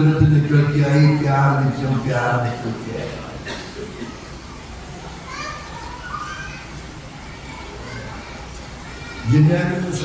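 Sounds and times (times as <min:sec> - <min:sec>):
steady low hum: 0:00.0 - 0:10.0
children chattering: 0:01.8 - 0:10.0.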